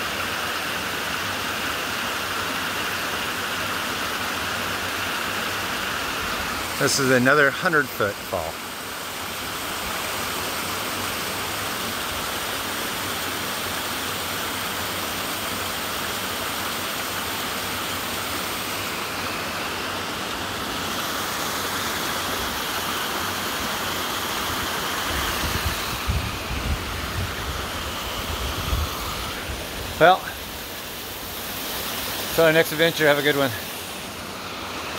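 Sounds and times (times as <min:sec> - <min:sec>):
waterfall rushing: 0:00.0 - 0:34.9.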